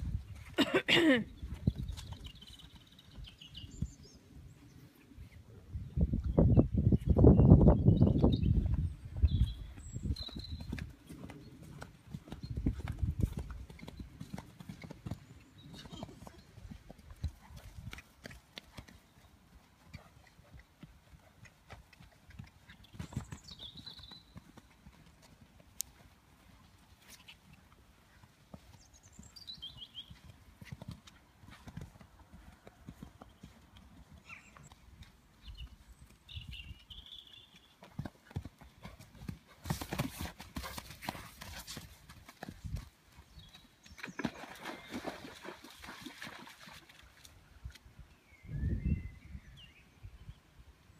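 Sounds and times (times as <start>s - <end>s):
pony hoofbeats on grass: 8.0s - 47.2s.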